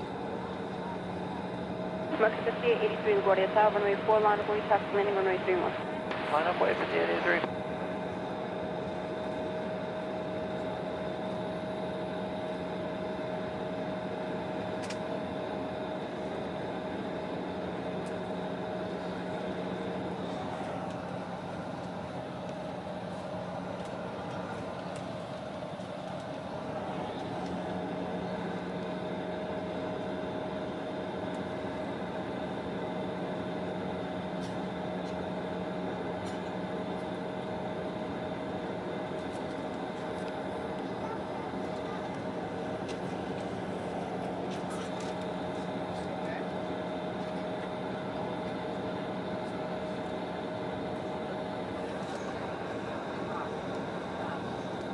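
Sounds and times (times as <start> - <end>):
airliner cabin hum: 0.0 - 54.9
jet engines idling whine: 0.0 - 54.9.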